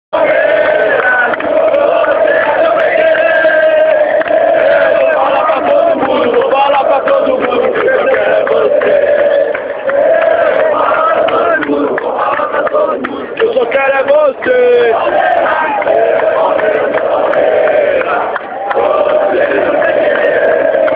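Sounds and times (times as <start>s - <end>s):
stadium crowd singing a chant: 0.1s - 20.9s.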